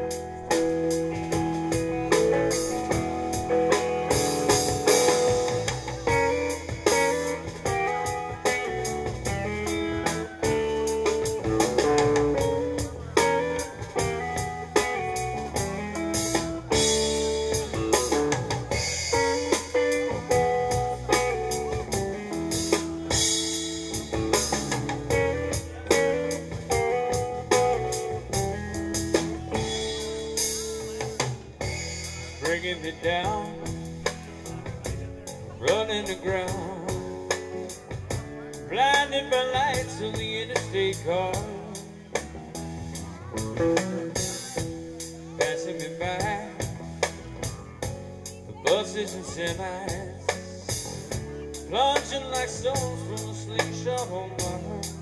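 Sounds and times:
drum kit: 0:00.0 - 0:55.0
electric guitar melody: 0:00.0 - 0:55.0
second guitar: 0:00.0 - 0:55.0.

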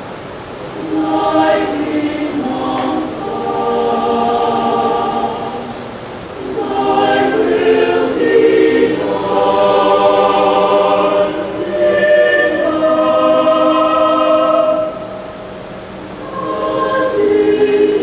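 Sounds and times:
mixed choir singing: 0:00.6 - 0:18.0.

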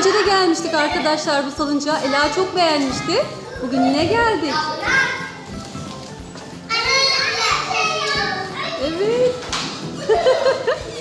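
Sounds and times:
young children calling and chattering: 0:00.0 - 0:11.0.

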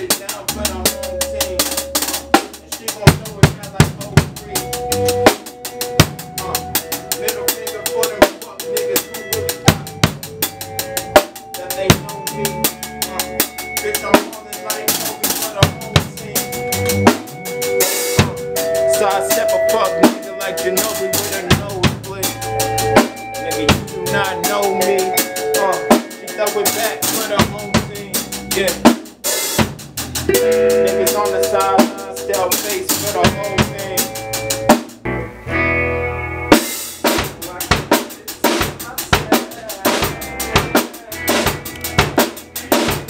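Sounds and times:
drum kit: 0:00.0 - 0:43.0
electric bass: 0:00.0 - 0:43.0
electric guitar: 0:30.3 - 0:37.4, 0:39.3 - 0:43.0.

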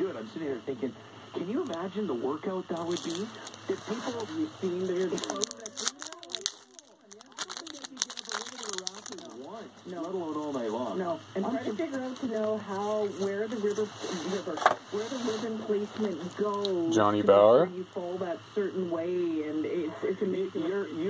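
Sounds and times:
wrapper crinkling and tearing: 0:02.8 - 0:10.8, 0:11.7 - 0:13.9.

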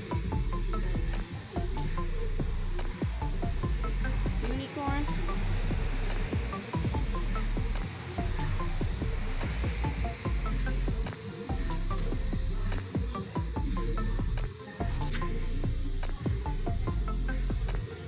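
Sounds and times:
background music with bass: 0:00.0 - 0:18.0
insect chorus: 0:00.0 - 0:18.0.

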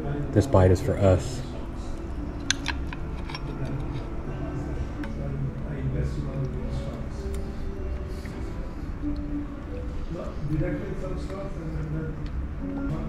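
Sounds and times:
room murmur: 0:00.0 - 0:13.0
soft background music: 0:00.0 - 0:13.0
fork clinking on plate: 0:02.4 - 0:04.1.

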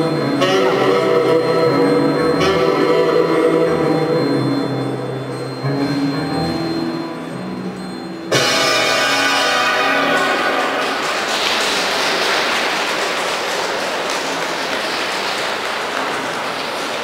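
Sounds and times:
loud final music chord: 0:08.3 - 0:11.4
audience applause: 0:08.4 - 0:17.0.

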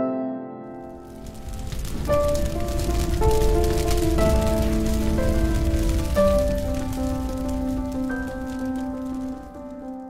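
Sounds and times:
slow ambient music: 0:00.0 - 0:10.0
crackling hiss: 0:00.8 - 0:10.0.

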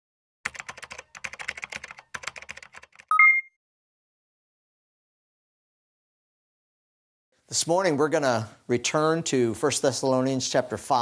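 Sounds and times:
rapid keyboard clicking: 0:00.4 - 0:03.1
two-note electronic beep: 0:03.1 - 0:03.5.

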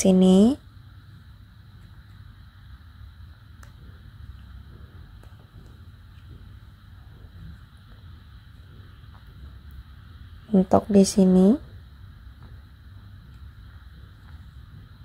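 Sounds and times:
background hum: 0:00.0 - 0:15.0
yarn and needle ticks and rustles: 0:01.0 - 0:15.0.

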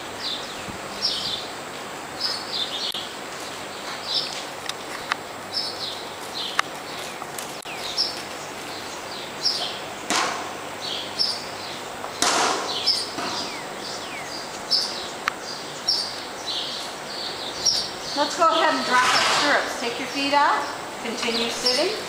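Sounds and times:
small birds chirping: 0:00.0 - 0:22.0.

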